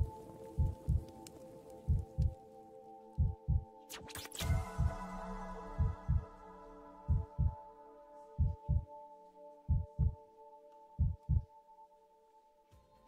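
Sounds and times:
heartbeat thumps: 0.0s - 1.1s, 1.9s - 2.4s, 3.2s - 3.7s, 4.5s - 5.0s, 5.8s - 6.3s, 7.1s - 7.6s, 8.4s - 8.9s, 9.7s - 10.2s, 11.0s - 11.5s
soft synth pad chord: 0.0s - 13.0s.

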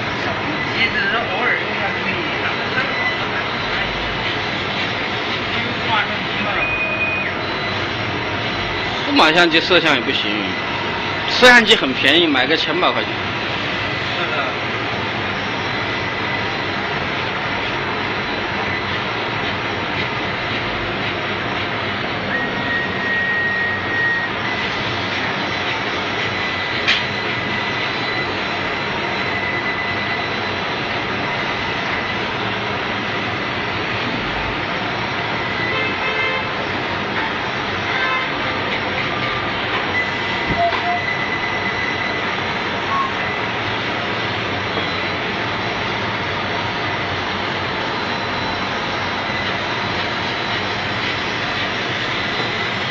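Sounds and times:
laser cutting machine running: 0.0s - 52.9s.

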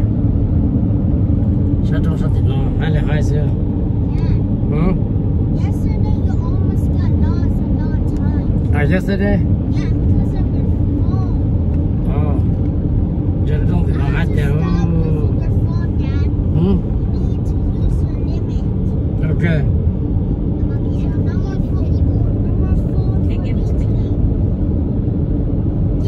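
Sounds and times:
car road and engine rumble: 0.0s - 26.0s.

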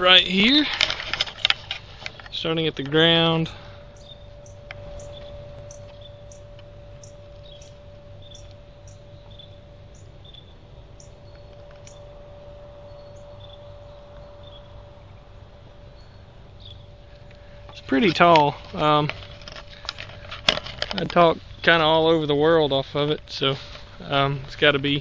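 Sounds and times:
insects chirping: 0.0s - 25.0s
steady hum and low rumble: 0.0s - 25.0s.

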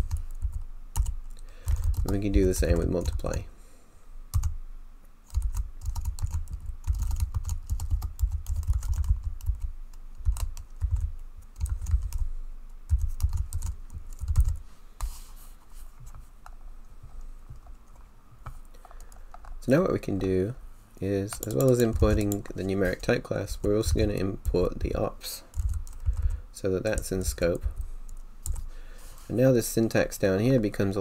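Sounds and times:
computer keyboard typing: 0.0s - 3.3s, 4.3s - 4.6s, 5.3s - 12.3s, 12.9s - 14.6s, 21.3s - 22.5s, 25.5s - 26.3s, 26.9s - 28.7s.

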